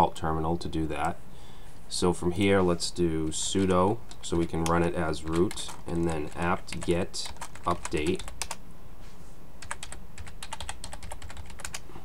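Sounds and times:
typing on computer keyboard: 4.1s - 8.6s, 9.6s - 11.8s.

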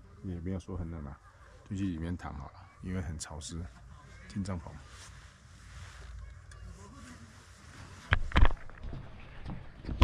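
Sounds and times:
faint voice murmur: 0.0s - 8.2s
handheld camera handling rumble: 8.1s - 10.0s.

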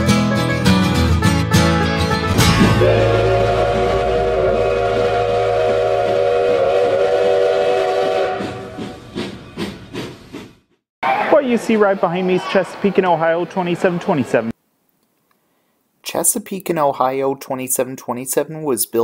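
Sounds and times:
steam locomotive whistle: 2.4s - 9.0s.

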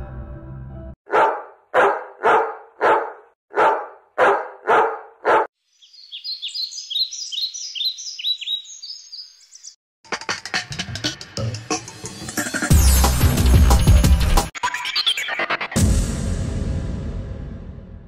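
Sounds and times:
dog barking: 1.1s - 5.5s.

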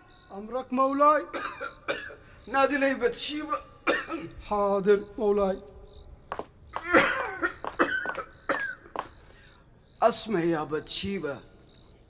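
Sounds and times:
person coughing: 1.4s - 2.2s, 3.9s - 4.3s, 6.8s - 8.9s.

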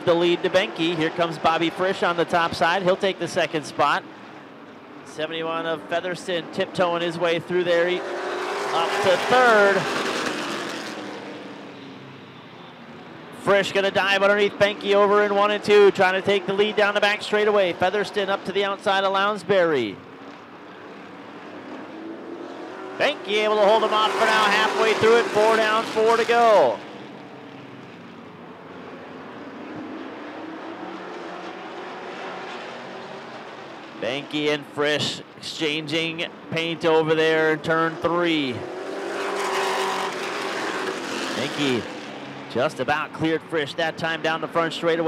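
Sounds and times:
race car engines droning: 0.0s - 45.0s.

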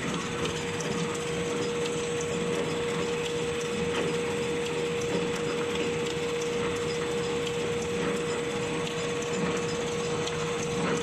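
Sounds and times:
machine mechanical clatter: 0.0s - 11.0s
machine steady hum: 0.0s - 11.0s.

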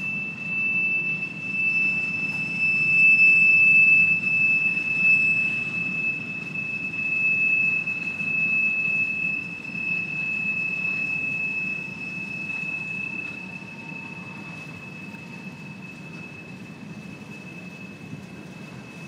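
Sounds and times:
high-pitched wheel squeal: 0.0s - 19.0s.

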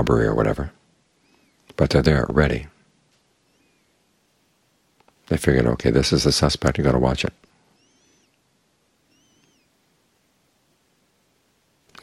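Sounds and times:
faint high bird chirps: 1.1s - 1.7s, 3.4s - 4.1s, 7.6s - 9.8s.

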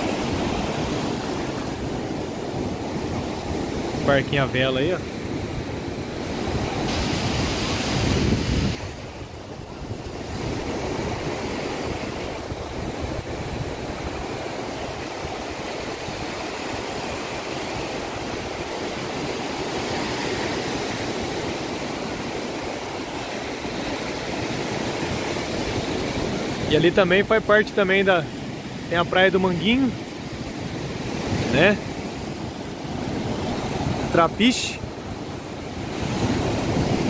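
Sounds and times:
wind buffeting microphone: 0.0s - 27.0s, 34.8s - 37.0s
surf washing up beach: 0.0s - 37.0s.

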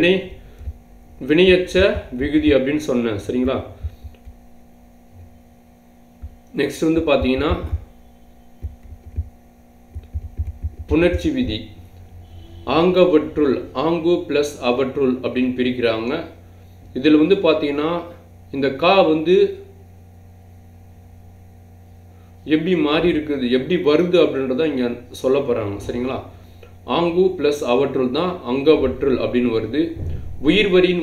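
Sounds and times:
faint low thumps: 0.0s - 12.5s
electrical mains hum: 0.0s - 31.0s.

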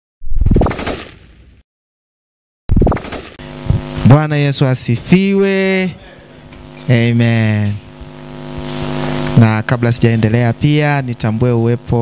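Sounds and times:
rapid crackling pops with upward sweep: 0.3s - 1.4s, 2.7s - 3.4s.

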